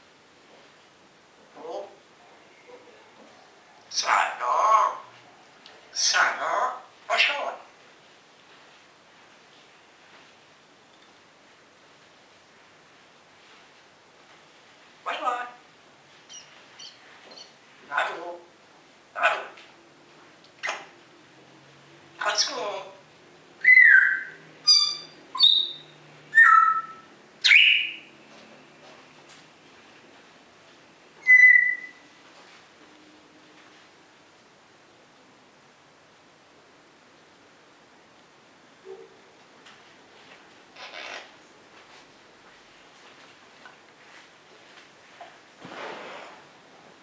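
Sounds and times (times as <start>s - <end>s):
parrot vocalizing: 3.9s - 5.1s, 5.9s - 7.7s, 15.0s - 15.6s, 16.3s - 18.5s, 19.1s - 19.6s, 20.6s - 21.0s, 22.2s - 23.0s, 23.6s - 28.0s, 31.2s - 32.0s, 40.8s - 41.3s
parrot whistling: 23.6s - 28.1s, 31.2s - 32.0s.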